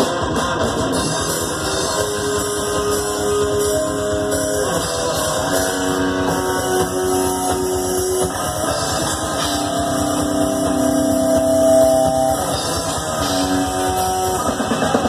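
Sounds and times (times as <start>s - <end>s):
thrash metal band playing: 0.0s - 15.0s.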